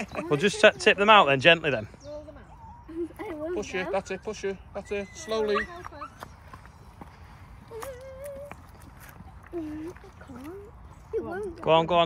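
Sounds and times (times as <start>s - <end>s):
low outdoor background: 0.0s - 12.0s.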